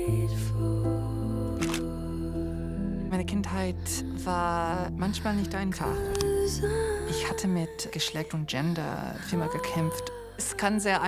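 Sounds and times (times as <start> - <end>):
soft music with held chords: 0.0 - 11.0.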